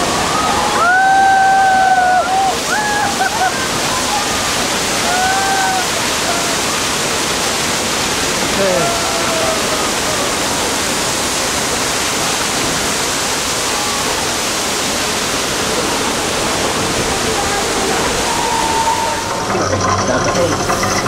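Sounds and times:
water rushing down steps: 0.0s - 21.0s.

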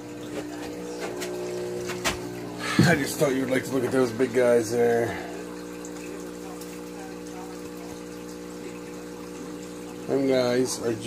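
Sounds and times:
aquarium equipment hum: 0.0s - 11.0s
water from sponge filter: 0.0s - 11.0s.

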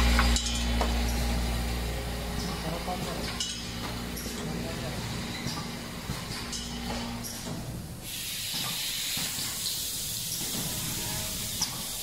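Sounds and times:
low mechanical rumble: 0.0s - 8.0s
compressed air hiss: 8.0s - 12.0s.

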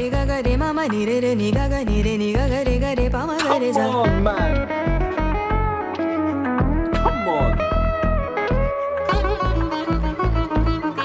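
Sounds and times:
electric guitar lead: 0.0s - 11.0s
bass and drum beat: 4.1s - 5.8s, 6.6s - 10.9s.

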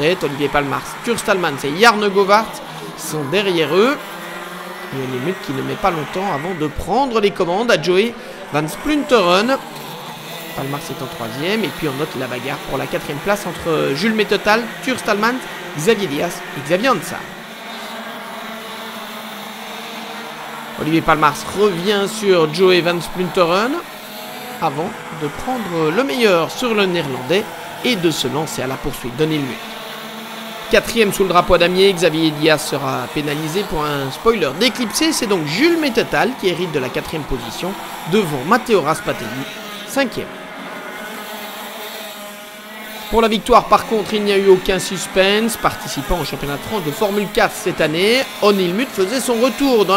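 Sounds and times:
racing kart engines drone: 0.0s - 49.9s.

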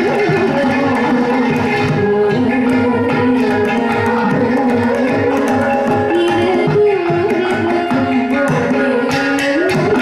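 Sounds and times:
clay pot and drum percussion: 0.0s - 10.0s.

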